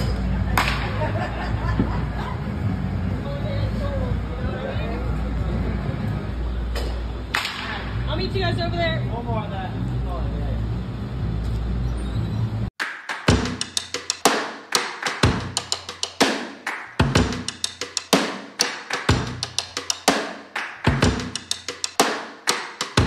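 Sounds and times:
indoor batting cage noise: 0.0s - 9.4s
bat cracking against ball: 6.8s - 7.9s
music with steady drum beat: 12.8s - 23.0s.

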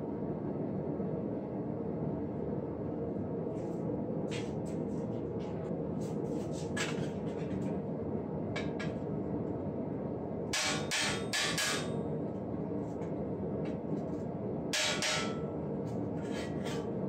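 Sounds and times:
hammer tapping chisel on metal: 10.6s - 11.9s, 14.8s - 15.4s.

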